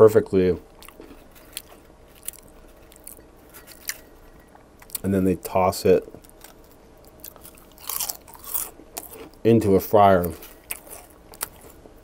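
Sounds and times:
potato chips crackling: 6.3s - 9.4s.

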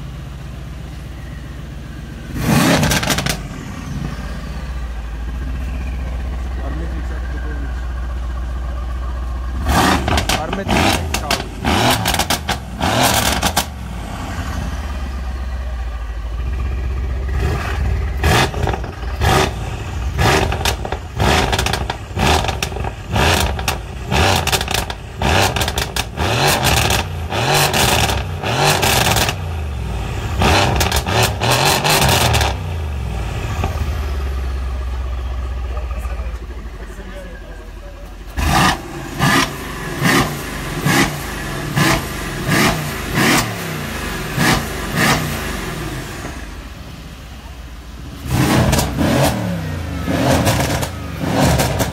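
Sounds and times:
engine idling: 0.0s - 51.9s
car engine revving: 2.2s - 37.6s, 38.2s - 51.9s.

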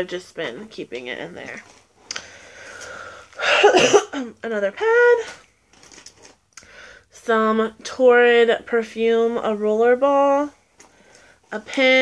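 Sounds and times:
person speaking: 0.0s - 1.8s, 4.4s - 5.4s
rustling of items in a purse: 0.7s - 3.4s, 5.2s - 6.5s.

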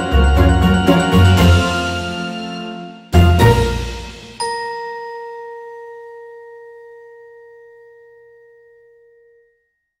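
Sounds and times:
bell-like chime ringing: 4.0s - 9.5s.

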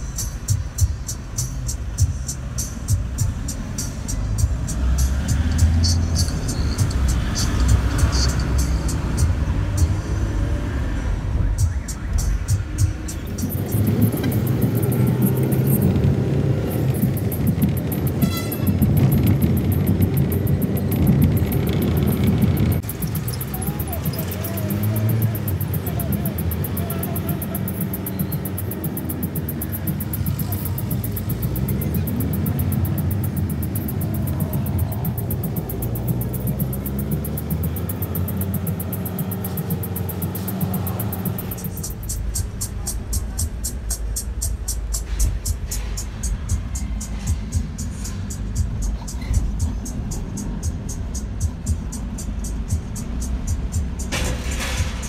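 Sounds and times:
music: 0.0s - 15.6s, 40.7s - 55.0s
road noise: 0.0s - 55.0s
vehicle engine: 0.0s - 55.0s
voices: 2.8s - 55.0s.

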